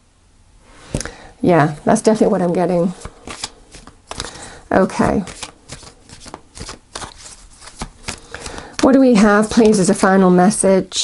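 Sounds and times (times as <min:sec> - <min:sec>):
cards being shuffled: 0:02.0 - 0:10.1.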